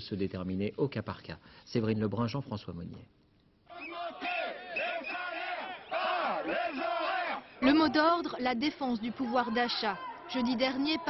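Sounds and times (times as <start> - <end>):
crowd shouting slogans: 3.7 - 11.0.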